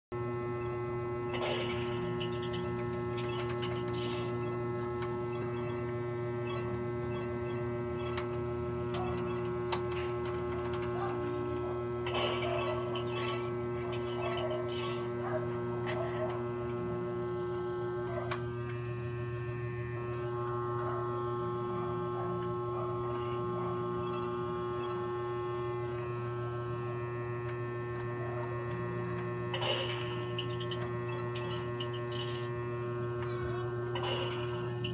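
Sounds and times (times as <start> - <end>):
electrical mains hum: 0.1 - 34.9.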